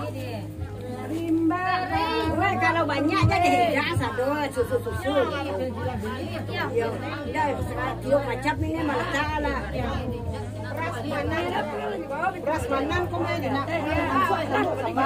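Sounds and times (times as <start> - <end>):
people chattering: 0.0 - 15.0.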